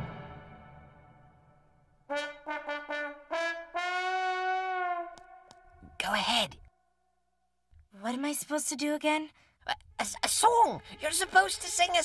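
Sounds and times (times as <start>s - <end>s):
brass instrument notes: 0.0s - 1.3s, 2.0s - 5.5s
music: 0.0s - 4.4s.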